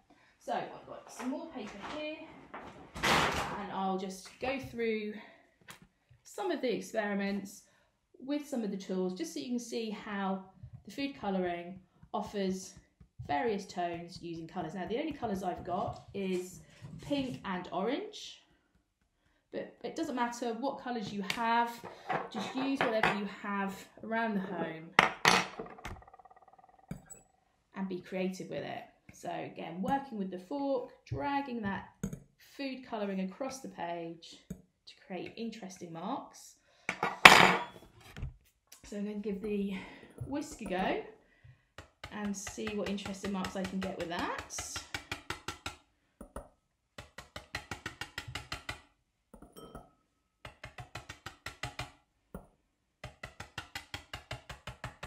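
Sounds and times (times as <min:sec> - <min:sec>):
metal utensils clattering: 0:21.9 - 0:23.2, 0:36.9 - 0:37.8
whisk tapping on paper: 0:41.8 - 0:48.8, 0:50.4 - 0:55.0.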